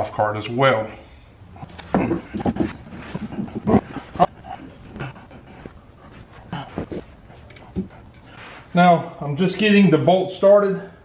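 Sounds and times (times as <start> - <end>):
man breathing heavily: 0.9 - 8.8
metal knocks and clunks: 1.6 - 5.8.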